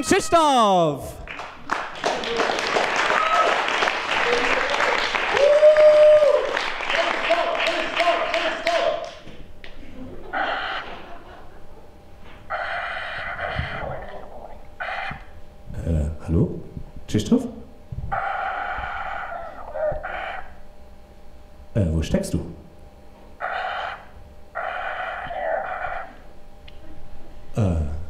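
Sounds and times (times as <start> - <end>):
audience applauding and cheering: 1.2 - 9.2
whoops: 2.1 - 6.6.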